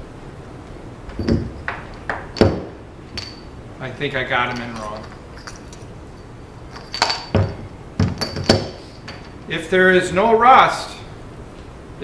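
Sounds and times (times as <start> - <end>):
batteries clinking metallically: 1.2 - 3.6, 4.2 - 9.5.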